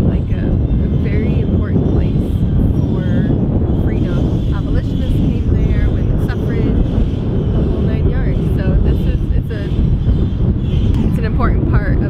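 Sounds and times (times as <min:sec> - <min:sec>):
strong wind on microphone: 0:00.0 - 0:12.0
voices: 0:00.0 - 0:12.0.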